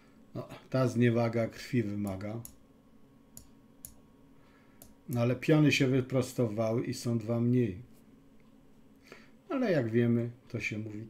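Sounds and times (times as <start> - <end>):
low room hum: 0.0 - 11.0
faint mouse clicks: 2.0 - 2.6, 3.4 - 4.0, 4.8 - 5.2.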